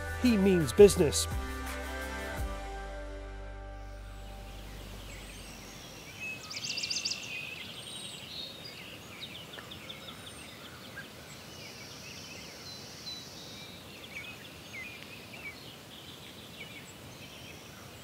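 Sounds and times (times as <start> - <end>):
background hiss: 0.0 - 2.4
music track: 0.0 - 6.1
small birds chirping and trilling: 4.1 - 18.0.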